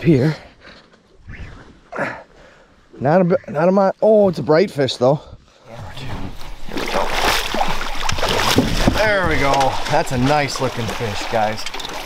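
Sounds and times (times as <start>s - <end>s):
fish thrashing and splashing: 6.3s - 12.0s.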